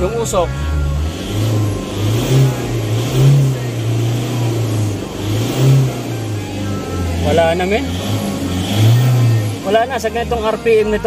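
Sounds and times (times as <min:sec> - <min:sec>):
diesel engine revving: 0:00.0 - 0:11.0.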